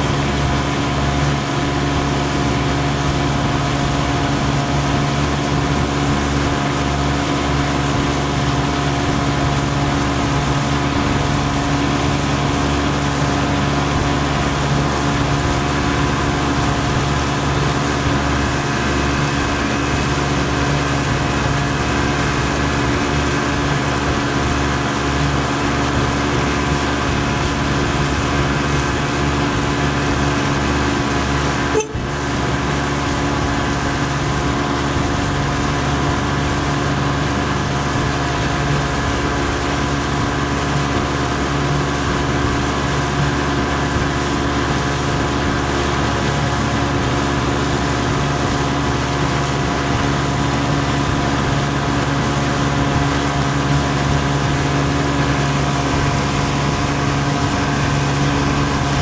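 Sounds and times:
boat motor droning: 0.0s - 59.0s.

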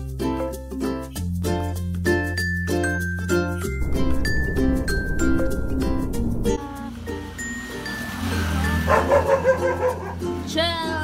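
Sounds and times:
background music with low bass: 0.0s - 7.9s
dog barking rapidly: 8.9s - 10.2s.

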